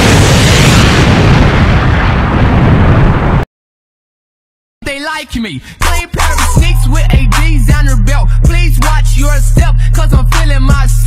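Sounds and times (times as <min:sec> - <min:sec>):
explosion rumble: 0:00.0 - 0:03.5.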